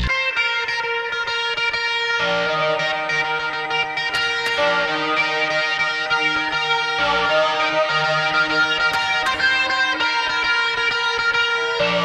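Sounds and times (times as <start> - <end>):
steady bass guitar: 0.0 - 0.4
sharp guitar accents: 0.0 - 12.0
sustained electric guitar lines: 0.0 - 12.0.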